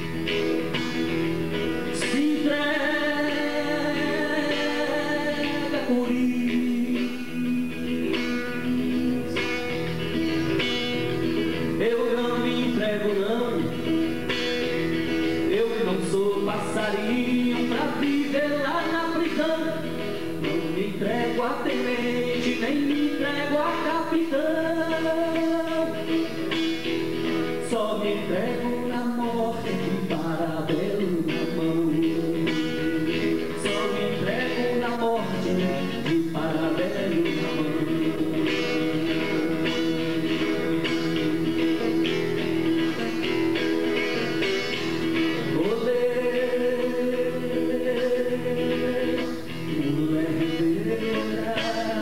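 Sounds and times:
man singing folk song: 0.0 - 52.0
strummed acoustic guitar: 0.0 - 52.0.

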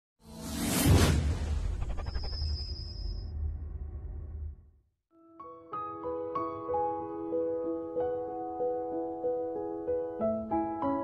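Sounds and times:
whoosh with deep rumble: 0.4 - 4.7.

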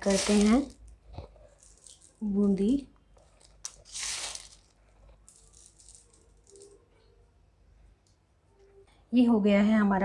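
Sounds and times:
dry pearls rattling onto a plate: 0.0 - 6.9.

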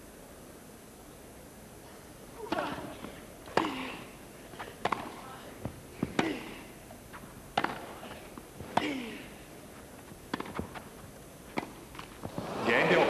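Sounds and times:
racket striking tennis ball: 4.8 - 5.2, 7.5 - 8.0, 10.3 - 10.8, 11.5 - 13.0.

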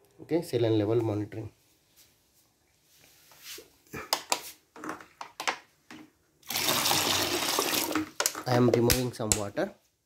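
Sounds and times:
water pouring into plastic bucket: 6.4 - 8.2
plastic bottle clicks and knocks: 7.9 - 9.5.

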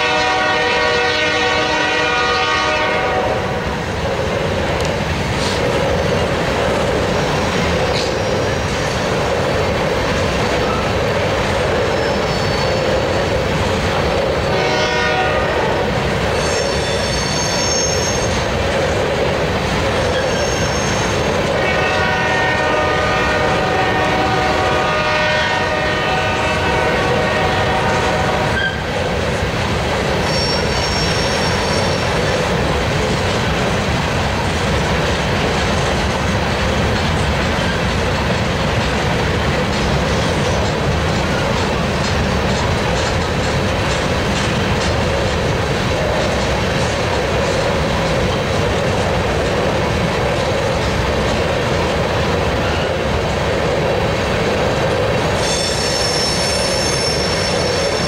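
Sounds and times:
locomotive air horn: 0.0 - 3.7, 14.5 - 18.3, 20.6 - 28.9, 30.3 - 32.0
train wheels roaring on rail: 0.0 - 58.0
high wheel squeal: 8.0 - 9.0, 11.8 - 13.0, 16.3 - 18.5, 20.0 - 21.3, 30.2 - 32.2, 55.4 - 58.0.

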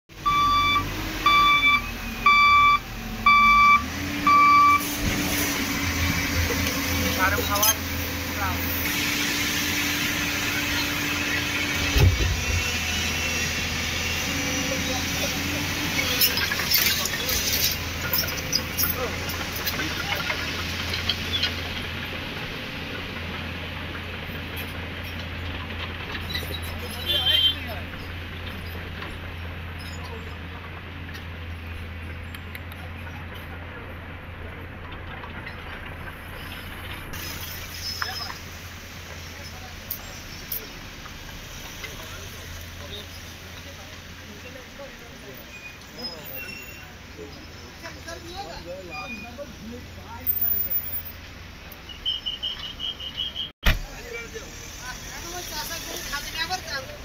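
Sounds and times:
loader engine running: 0.1 - 45.3
reversing alarm beeping: 0.2 - 4.9
people talking: 6.5 - 8.8, 14.2 - 17.8, 18.5 - 20.6, 26.7 - 29.3, 29.9 - 31.2, 38.0 - 38.5, 39.2 - 41.0, 41.6 - 51.1, 53.7 - 57.0.

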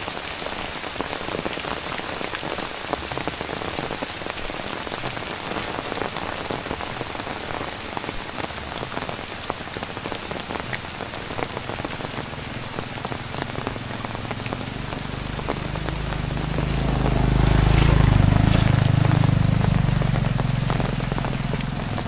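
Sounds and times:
raindrops ticking close by: 0.0 - 22.0
steady rain hiss: 0.0 - 22.0.

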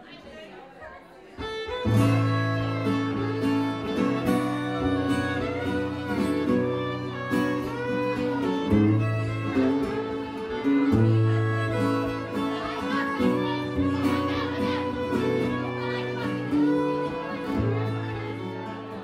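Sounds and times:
fiddle melody: 1.3 - 19.0
acoustic guitar: 1.4 - 19.0.

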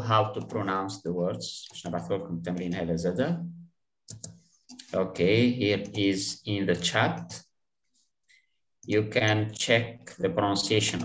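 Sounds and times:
man speaking: 0.0 - 3.6, 4.8 - 7.6, 8.8 - 11.0
computer mouse clicks: 4.1 - 4.9.

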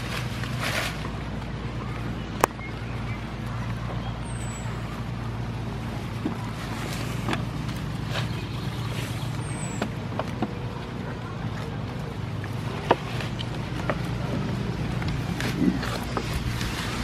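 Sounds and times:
goats chewing leaves: 0.0 - 17.0.

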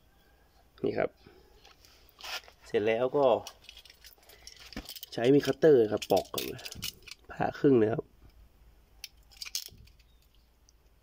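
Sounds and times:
person speaking: 2.6 - 3.6, 5.0 - 8.1
electrical cable clicking and rattling: 3.3 - 7.3, 9.0 - 10.4.

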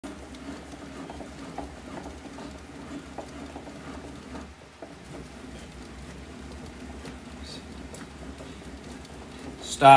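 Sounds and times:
bat ticking and crackling in roller: 0.0 - 9.9.

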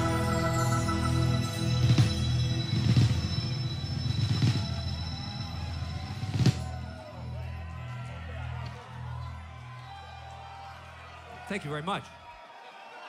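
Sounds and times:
drum and cymbal hits: 0.0 - 7.0.

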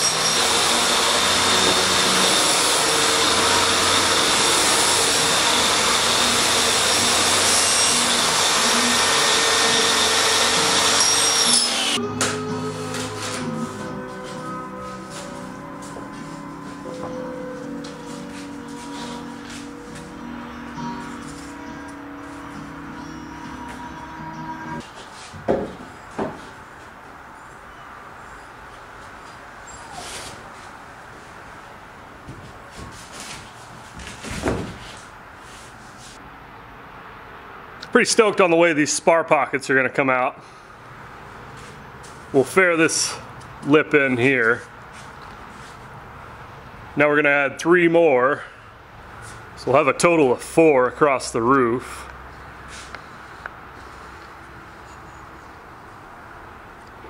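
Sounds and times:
track saw cutting foam: 0.0 - 12.0
background music: 12.0 - 24.8
sharp knocks: 25.4 - 26.4.

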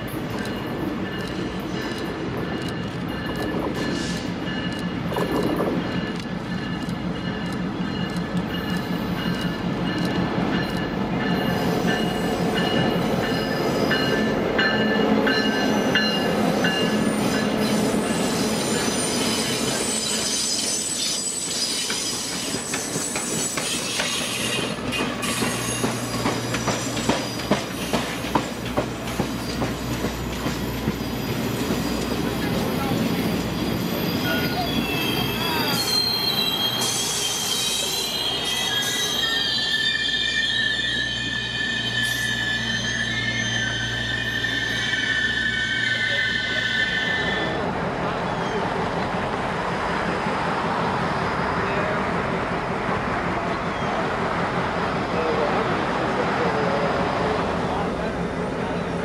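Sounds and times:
train rolling past: 0.0 - 59.0
wheels squealing on rails: 0.0 - 59.0.

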